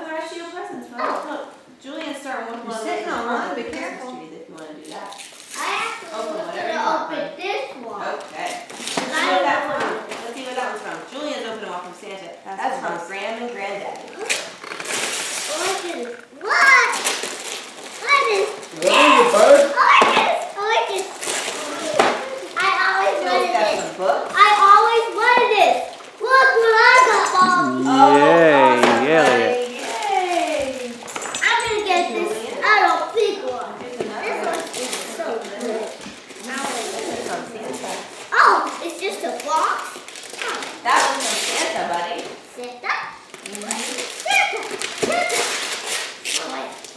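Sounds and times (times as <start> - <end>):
wrapping paper rustling and tearing: 4.8 - 6.5, 8.2 - 9.4, 13.8 - 26.6, 28.0 - 31.0, 34.4 - 46.9
child's voice: 15.5 - 17.0, 18.0 - 23.8, 24.4 - 29.6.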